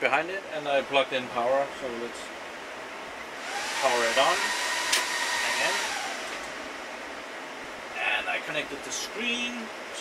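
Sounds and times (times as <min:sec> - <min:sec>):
server cooling fans whooshing: 0:00.0 - 0:10.0
sharp click: 0:04.9 - 0:05.1.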